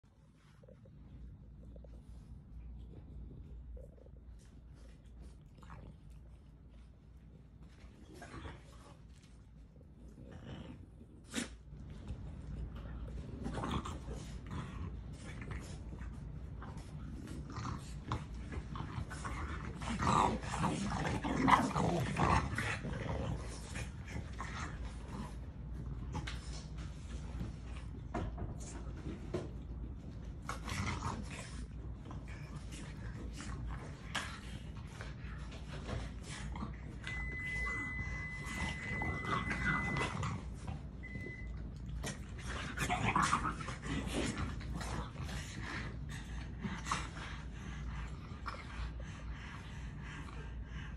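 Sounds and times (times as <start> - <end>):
dog vocal noises: 36.8 - 41.5
thin high tone: 37.0 - 40.2.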